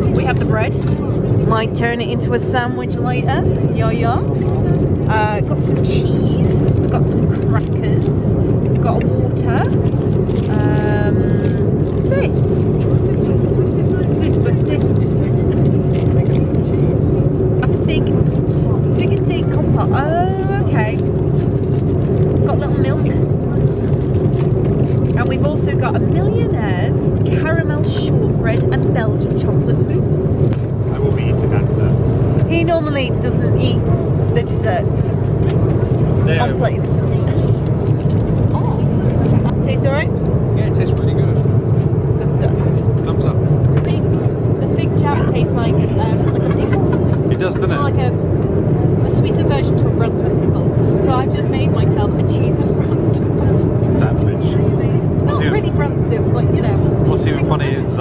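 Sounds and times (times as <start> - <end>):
airliner cabin drone: 0.0 - 58.0
passengers' voices: 0.0 - 58.0.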